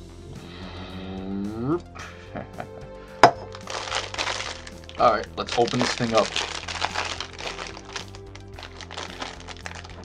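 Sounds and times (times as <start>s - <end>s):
synth music with bass: 0.0s - 10.0s
plastic packaging crinkling: 3.5s - 10.0s.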